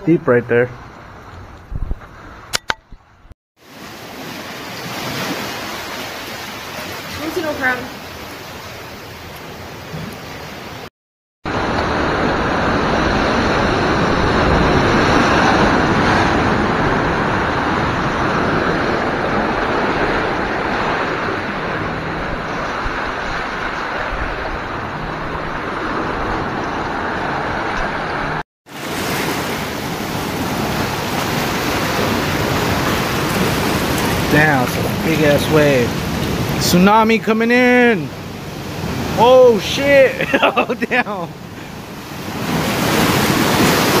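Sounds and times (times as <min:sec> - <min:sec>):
ocean surf washing over rocks: 0:03.6 - 0:10.9, 0:11.5 - 0:44.0.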